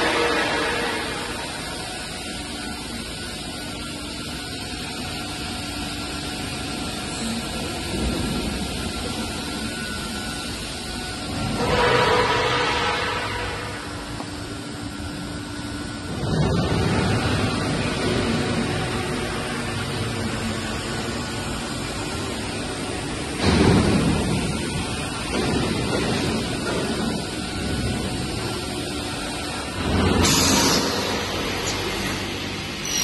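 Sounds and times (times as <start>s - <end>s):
extrusion machinery running: 0.0s - 33.0s.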